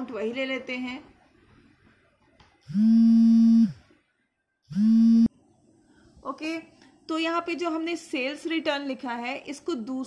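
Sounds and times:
loud buzzing tones: 2.7 - 3.8, 4.7 - 5.3.

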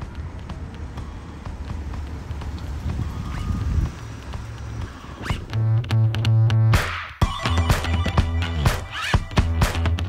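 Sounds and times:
wind rumble on microphone: 0.0 - 5.0
footsteps on asphalt: 0.0 - 5.6.

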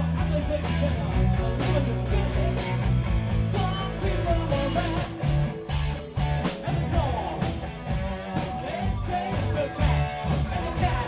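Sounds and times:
bass guitar: 0.0 - 11.0
drums: 0.0 - 11.0
electric guitars: 0.0 - 11.0.

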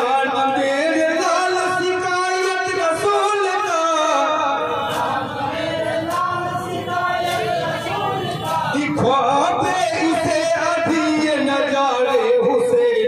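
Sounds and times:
group of men singing: 0.0 - 12.8.

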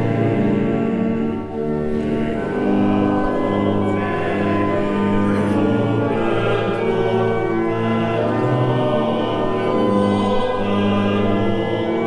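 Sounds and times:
congregation singing a hymn: 0.0 - 12.0
pipe organ: 0.0 - 12.0.

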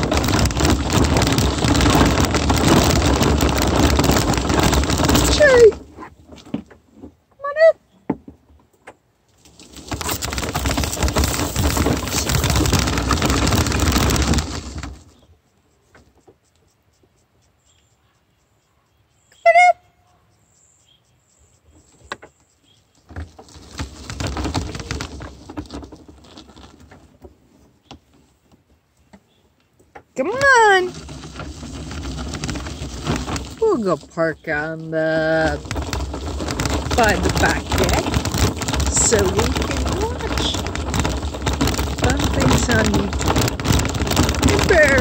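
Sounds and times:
wheels rolling on gravel road: 0.0 - 7.2, 9.3 - 15.3, 23.1 - 28.4, 30.1 - 45.0.

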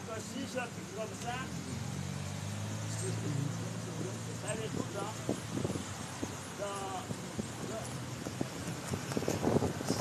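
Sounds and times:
vehicle engine humming: 0.0 - 10.0
man talking: 2.9 - 5.4, 6.5 - 8.0.

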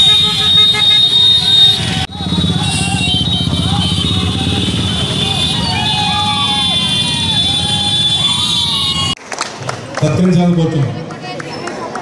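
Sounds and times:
motorcycle engines passing: 0.0 - 9.2
people shouting: 0.0 - 9.2.

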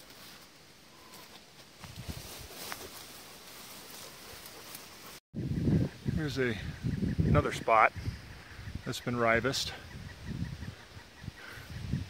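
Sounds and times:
rustling of leaves and brush: 0.0 - 5.6.

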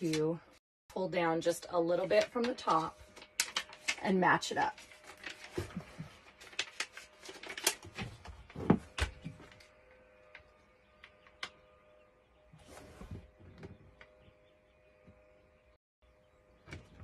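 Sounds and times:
paper backing crackling and rustling: 2.0 - 10.1.

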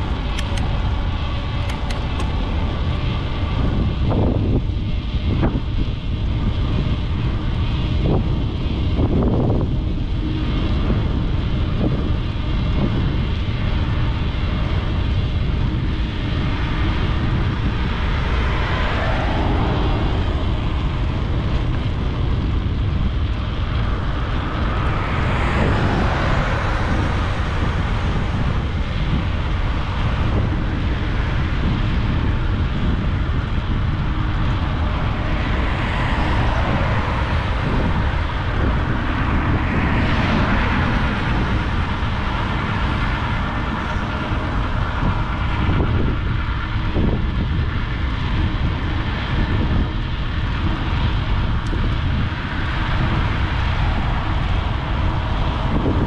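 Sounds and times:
passing vehicles road noise: 0.0 - 56.0
wind rumbling on microphone: 0.0 - 56.0.

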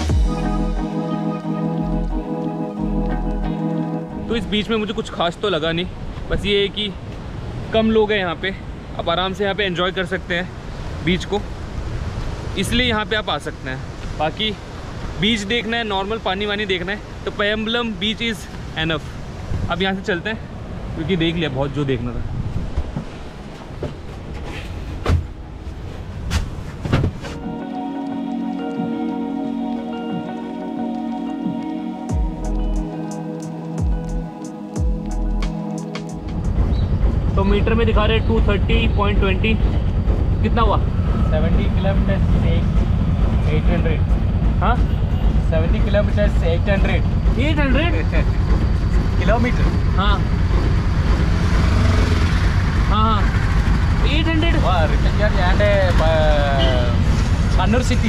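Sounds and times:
low rumble: 36.2 - 54.1.

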